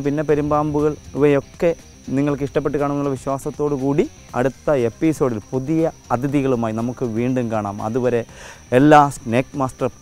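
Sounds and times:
high-pitched drone of insects: 0.0 - 10.0
man speaking: 0.0 - 10.0.

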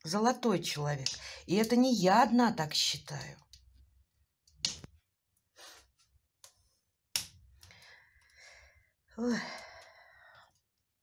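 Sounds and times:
woman sighing: 9.1 - 10.3.

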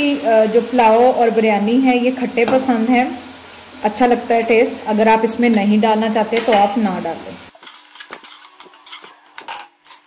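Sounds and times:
metal spatula scraping a pot: 7.5 - 10.0.

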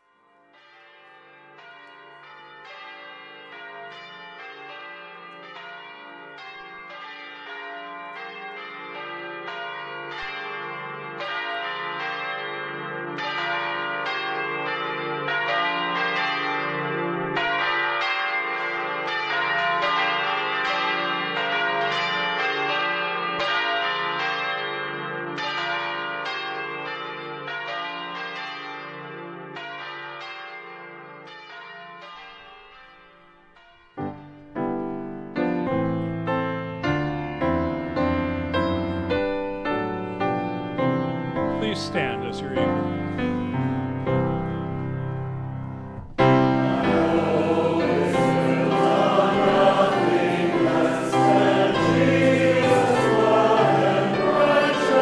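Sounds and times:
bells ringing: 0.0 - 34.4, 37.2 - 44.9, 46.2 - 55.0.

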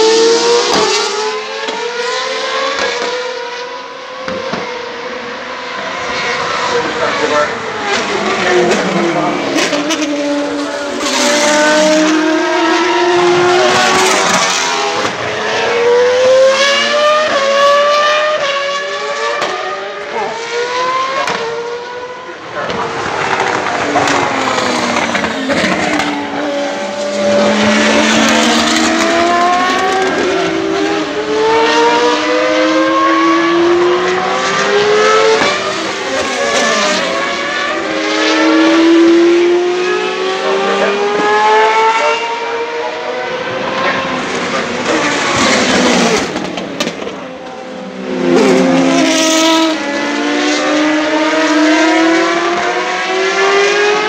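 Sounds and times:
racing car engines: 0.0 - 54.0.

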